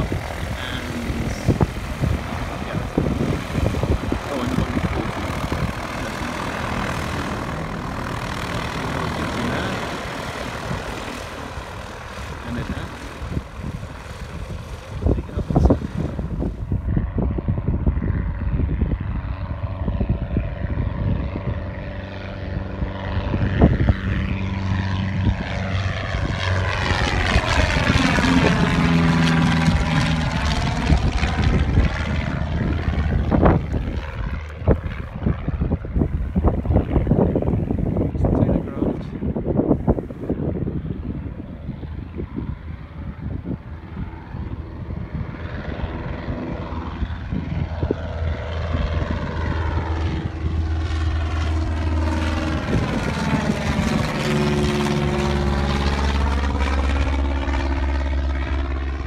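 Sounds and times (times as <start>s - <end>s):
propeller airplane flying past: 0.0s - 59.0s.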